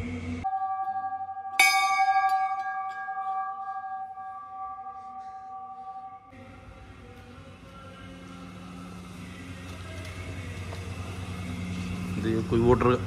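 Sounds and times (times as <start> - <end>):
brass bell ringing: 0.5 - 6.3
bell struck with loud clang: 1.5 - 6.0.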